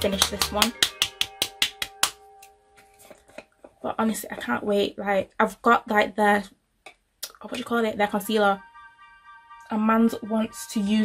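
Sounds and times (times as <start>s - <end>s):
steady tone: 8.2s - 11.0s.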